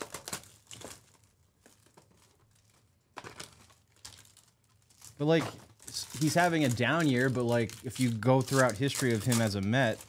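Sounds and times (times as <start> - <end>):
plastic shrink wrap crinkling and tearing: 0.0 - 10.0.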